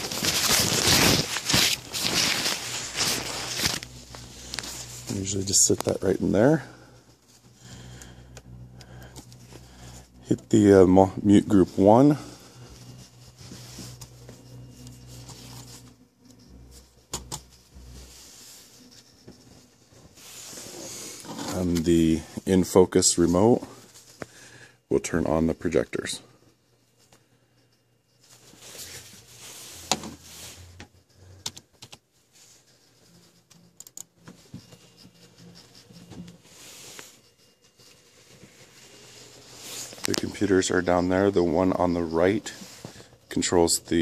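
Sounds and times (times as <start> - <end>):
plastic cover crinkling: 0.0 - 6.0
low steady hum: 0.0 - 44.0.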